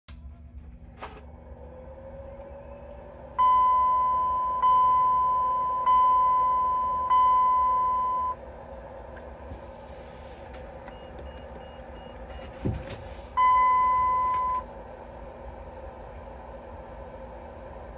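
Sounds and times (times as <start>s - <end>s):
ringing warning chime dings: 13.4s - 14.6s.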